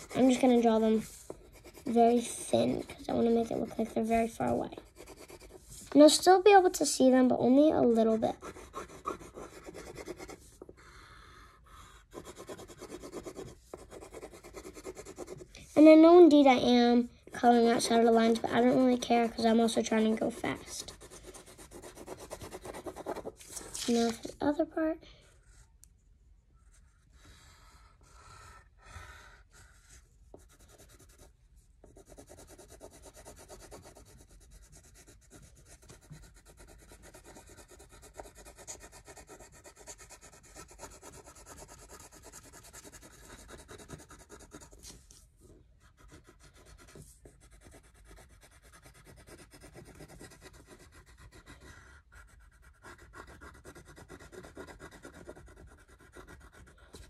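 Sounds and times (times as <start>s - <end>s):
crayon scribbling on paper: 0.0s - 10.8s, 11.5s - 24.6s, 26.6s - 45.2s, 45.8s - 57.0s.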